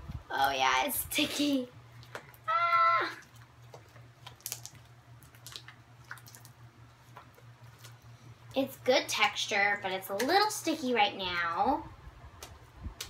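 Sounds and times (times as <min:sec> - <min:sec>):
low steady hum: 0:00.0 - 0:13.0
slime clicking and popping: 0:03.7 - 0:06.6.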